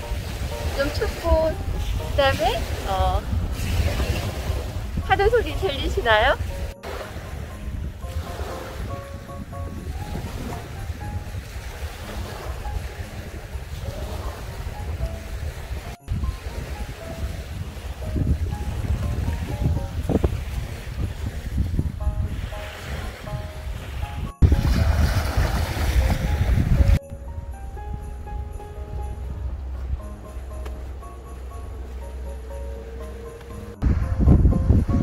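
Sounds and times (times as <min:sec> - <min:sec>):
waves washing onto beach: 0:00.0 - 0:27.0
quiet background music: 0:00.0 - 0:35.0
wind buffeting microphone: 0:00.0 - 0:35.0.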